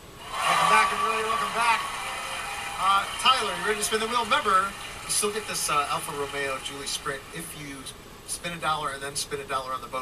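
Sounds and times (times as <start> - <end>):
man speaking: 0.4 - 1.9, 2.8 - 10.0.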